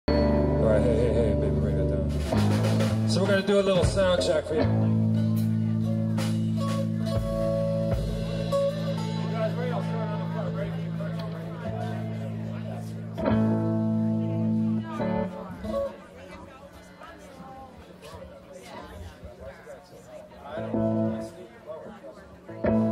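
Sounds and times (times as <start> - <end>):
electric guitar chords: 0.1 - 16.1, 20.5 - 21.4, 22.4 - 22.9
stage noise: 0.1 - 22.9.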